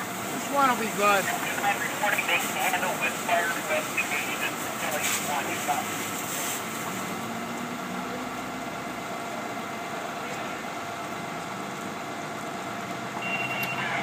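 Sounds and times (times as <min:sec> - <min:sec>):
diesel engine running pump: 0:00.0 - 0:14.0.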